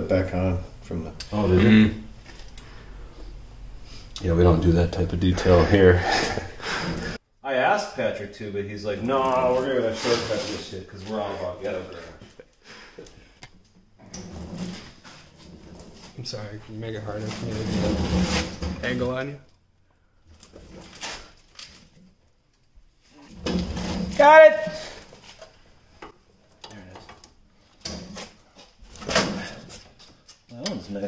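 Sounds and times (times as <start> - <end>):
gloves rustling: 8.9 - 13.4.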